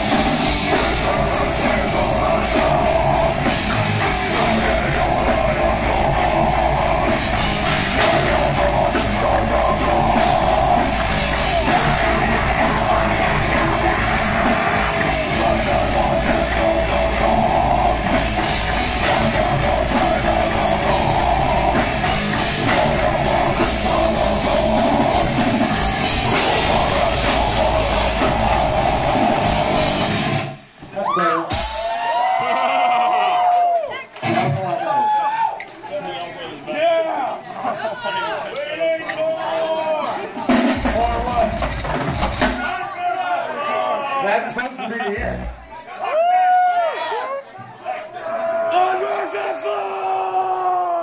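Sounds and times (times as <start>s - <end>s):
death metal band playing: 0.0s - 30.7s, 31.5s - 32.3s, 40.5s - 42.7s.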